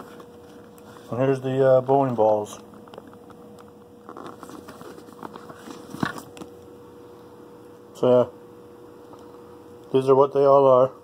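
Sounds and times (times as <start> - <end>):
faint steady hum: 0.0 - 11.0
bag rustling and clicks: 4.0 - 6.5.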